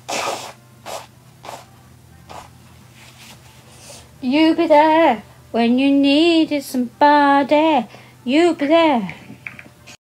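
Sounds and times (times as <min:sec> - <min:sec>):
woman blowing her nose: 0:00.0 - 0:01.7.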